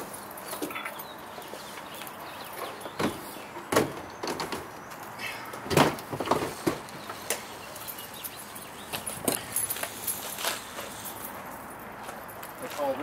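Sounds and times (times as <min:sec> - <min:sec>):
gear cases knocking and thumping: 0:02.5 - 0:07.1.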